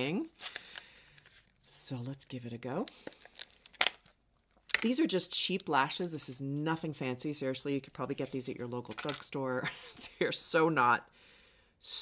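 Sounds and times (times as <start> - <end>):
small box crinkling clicks: 2.8 - 5.0.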